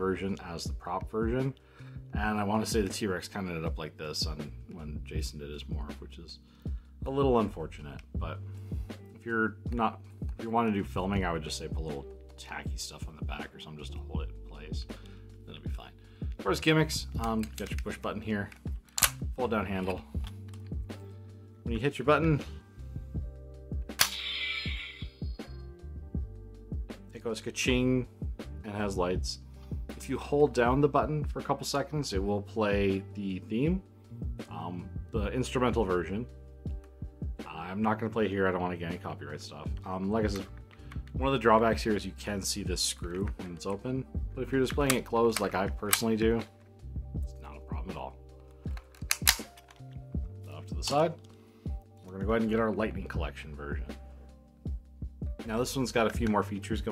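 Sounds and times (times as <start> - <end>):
soft music with plucked notes: 0.0 - 56.9.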